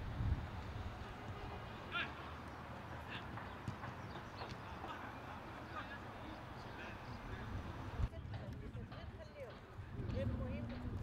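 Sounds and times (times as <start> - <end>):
outdoor ambience: 0.0 - 11.0
players calling and shouting: 1.0 - 8.2.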